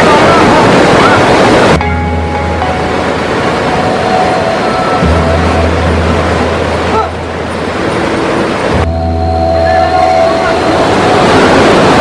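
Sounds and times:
churning river water splashing: 0.0 - 12.0
low steady drone: 0.0 - 12.0.

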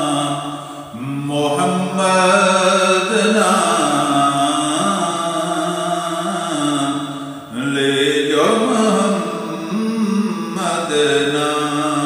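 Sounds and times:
man chanting: 0.0 - 12.0.

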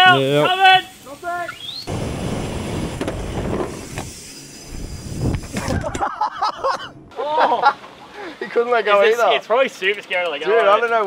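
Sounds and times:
person shouting: 0.0 - 0.9
wind on microphone: 1.9 - 6.0
bike tyres rumbling on concrete: 1.9 - 6.1.

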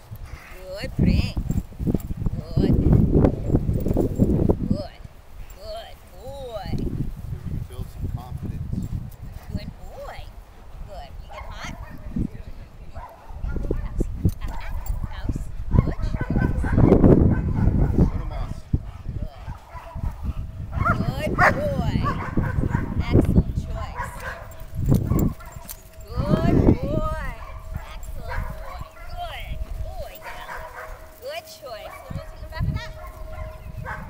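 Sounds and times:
dog barking: 11.3 - 12.0, 13.0 - 18.4, 19.0 - 23.0, 23.9 - 25.8, 27.2 - 29.4, 30.1 - 31.1, 31.8 - 34.0.

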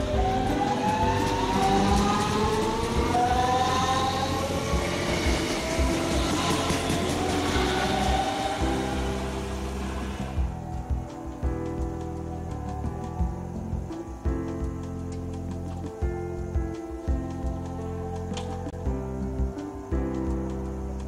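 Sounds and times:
electric train traction whine: 0.0 - 11.3
background music: 0.0 - 21.0.

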